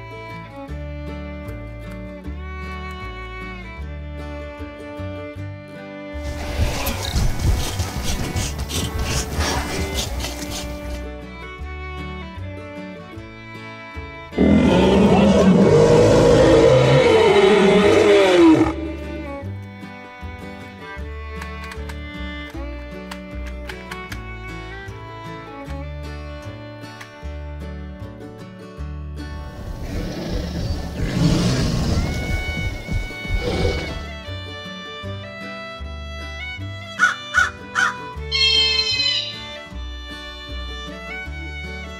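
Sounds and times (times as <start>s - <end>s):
background music: 0.0s - 41.9s
dinosaur roars: 14.4s - 19.3s, 29.6s - 32.4s.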